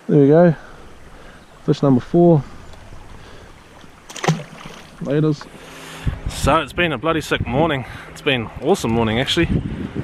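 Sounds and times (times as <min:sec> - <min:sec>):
stream water over stones: 0:00.1 - 0:06.0.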